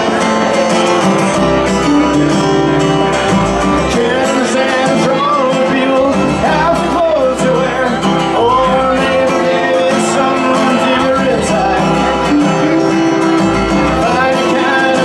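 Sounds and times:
country band playing: 0:00.0 - 0:15.0
person singing: 0:00.0 - 0:15.0
stand-up bass notes: 0:00.0 - 0:15.0.

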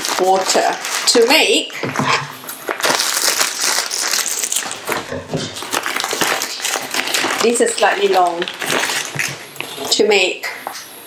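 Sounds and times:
plastic packet crinkling: 0:00.0 - 0:10.8.

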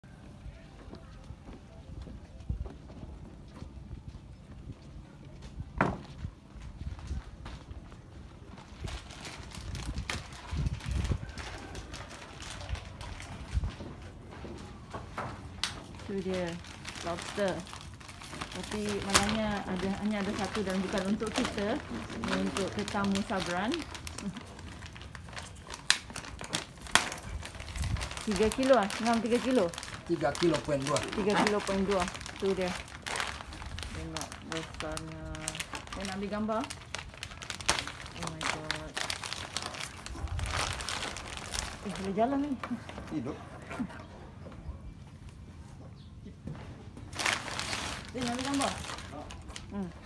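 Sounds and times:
plastic bag rustling and crinkling: 0:06.6 - 0:43.9, 0:47.0 - 0:50.0.

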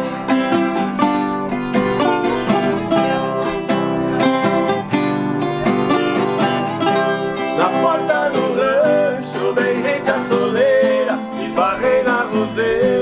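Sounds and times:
viola and guitar instrumental: 0:00.0 - 0:13.0
person singing: 0:01.5 - 0:13.0.

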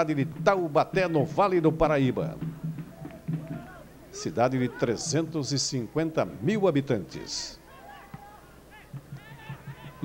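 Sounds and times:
stadium broadcast ambience: 0:00.0 - 0:10.0.

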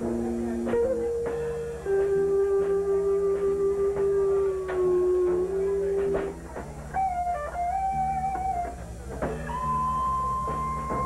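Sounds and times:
bass guitar line: 0:00.0 - 0:11.0
electric guitar bending notes: 0:00.0 - 0:11.0.

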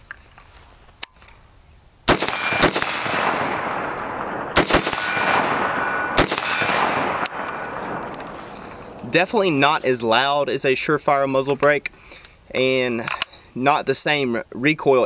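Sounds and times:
rifle shots with rolling echo: 0:02.1 - 0:09.6.

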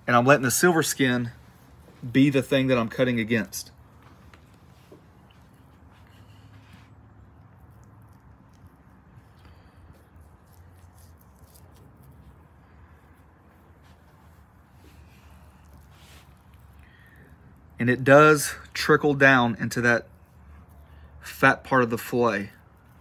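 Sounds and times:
steady low hum: 0:00.0 - 0:23.0
knife slicing meat: 0:09.9 - 0:12.4.

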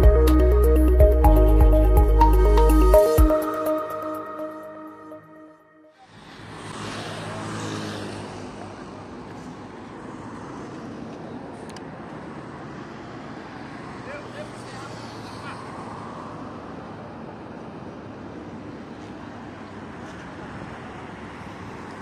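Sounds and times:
highway traffic: 0:00.0 - 0:22.0
vehicle passing: 0:05.8 - 0:17.5.

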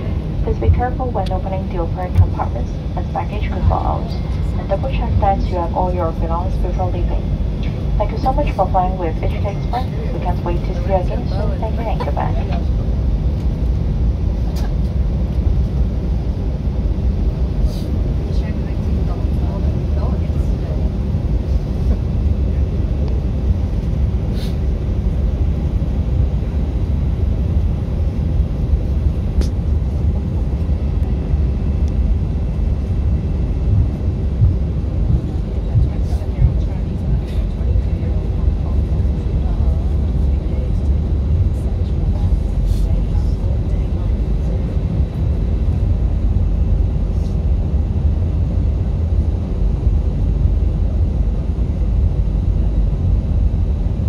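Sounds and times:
airliner engines and wheels rumbling: 0:00.0 - 0:54.0.

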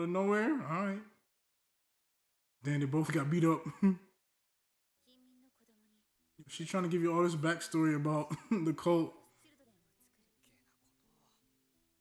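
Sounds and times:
faint soundtrack music: 0:05.0 - 0:12.0.

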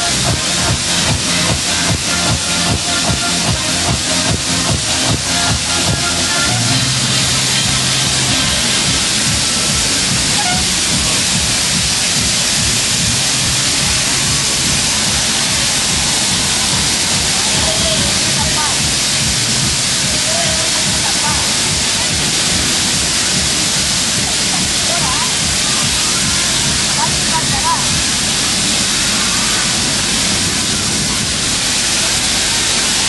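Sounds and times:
faint music: 0:00.0 - 0:33.0
faint voices: 0:00.0 - 0:33.0
loud hiss-like wash of noise: 0:00.0 - 0:33.0.

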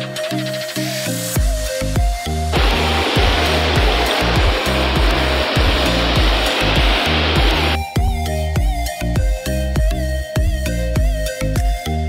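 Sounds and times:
background music with steady beat: 0:00.0 - 0:12.0
river water rushing over rapids: 0:02.6 - 0:07.8.

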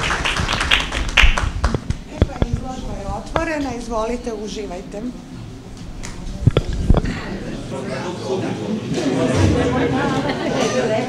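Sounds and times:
audience applauding: 0:00.0 - 0:02.0.

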